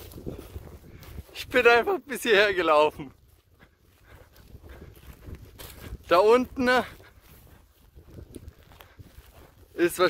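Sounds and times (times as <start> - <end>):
wind on phone microphone: 0.0 - 2.0, 2.9 - 10.0.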